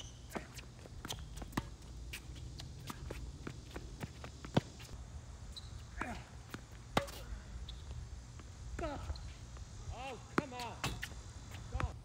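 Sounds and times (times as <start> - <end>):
footsteps on tennis court: 0.0 - 12.0.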